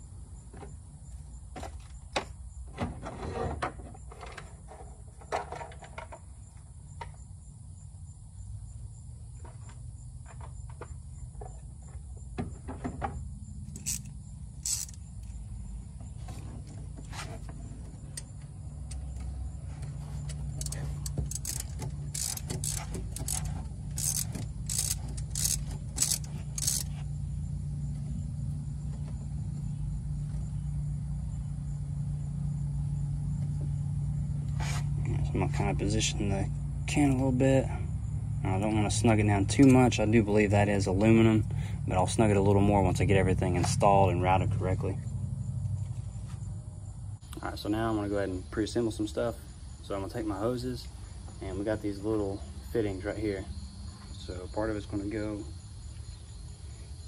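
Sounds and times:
metallic clicks and knocks: 13.7 - 15.0, 18.0 - 27.0
ratchet clicking: 13.7 - 15.4, 20.2 - 27.0.

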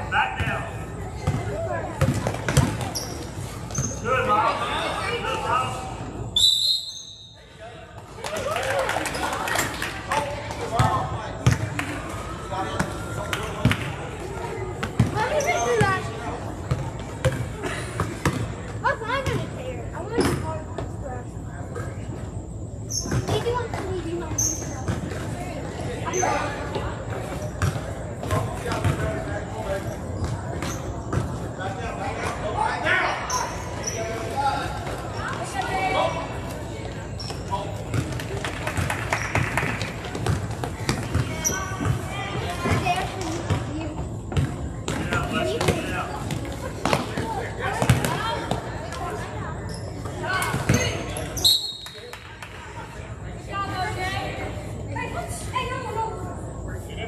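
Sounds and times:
basketball bouncing on gym floor: 1.2 - 3.0, 10.8 - 11.7, 14.8 - 16.0, 16.7 - 18.5, 19.2 - 19.5, 27.6 - 29.1, 37.9 - 38.2, 39.3 - 48.6.

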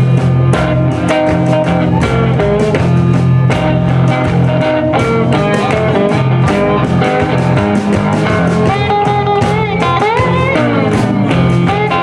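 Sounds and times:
drum kit steady beat: 0.0 - 12.0
electric guitar: 0.0 - 12.0
upright double bass: 0.0 - 12.0.

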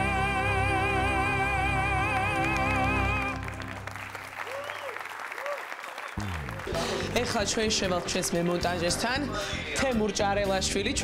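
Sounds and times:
music: 0.0 - 4.7, 6.2 - 11.0
audience applause: 2.2 - 8.8.

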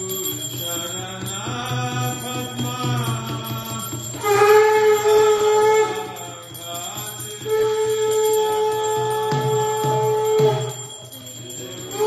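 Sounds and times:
conch shell blown: 4.0 - 12.0.

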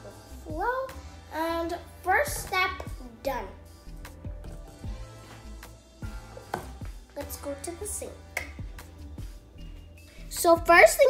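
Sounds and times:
background music: 0.0 - 11.0
child singing wordless phrases: 0.4 - 3.6, 10.3 - 11.0.

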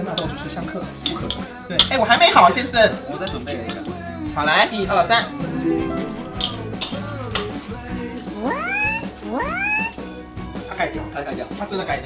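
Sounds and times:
background music: 5.4 - 8.3.

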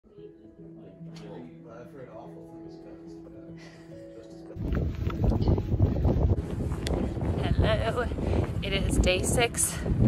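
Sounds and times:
wind buffeting microphone: 4.6 - 10.0.

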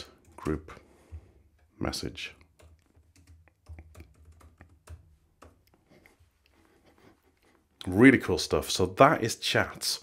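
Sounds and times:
typing on computer keyboard: 2.3 - 5.7.

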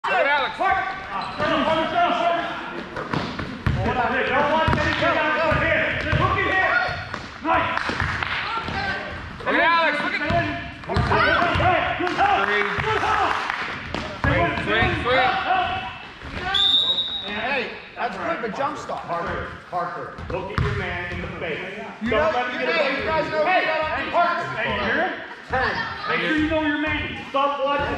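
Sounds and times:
voices and shouts: 0.0 - 2.8, 3.8 - 18.9, 21.9 - 27.9
basketball bouncing on gym floor: 3.0 - 3.9, 4.6 - 9.4, 10.3 - 11.8, 13.8 - 15.1, 20.2 - 21.4.

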